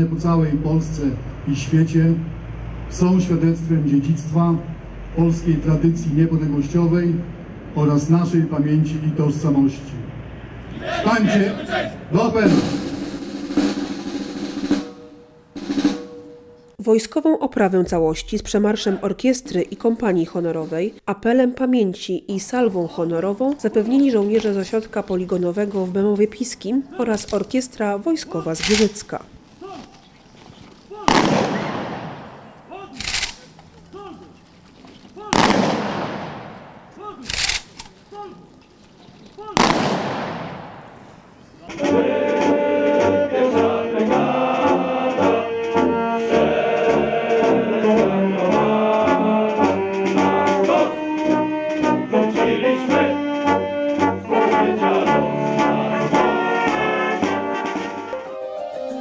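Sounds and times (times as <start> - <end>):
military brass band playing: 10.7 - 16.6, 31.0 - 32.7, 35.3 - 37.2, 39.6 - 59.0
rifle volleys with echo: 31.1 - 33.6, 35.3 - 38.0, 39.6 - 41.4
rifle bolt clack: 33.0 - 33.7.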